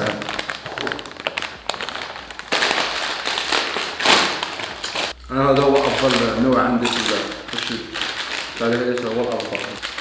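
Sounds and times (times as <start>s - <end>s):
plastic chip bag crinkling: 0.0s - 10.0s.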